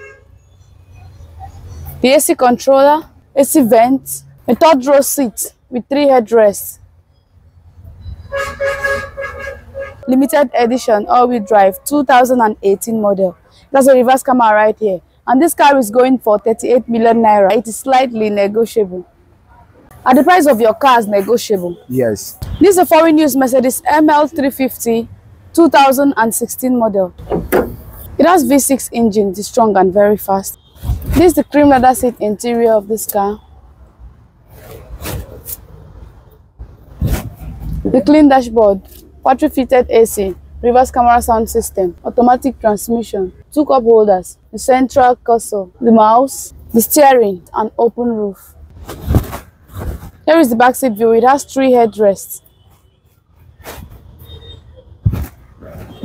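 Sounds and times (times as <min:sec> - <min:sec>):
vehicle horn: 0:00.0 - 0:00.4, 0:08.1 - 0:10.1, 0:54.0 - 0:54.9
phone handling knocks and rustles: 0:27.2 - 0:28.1.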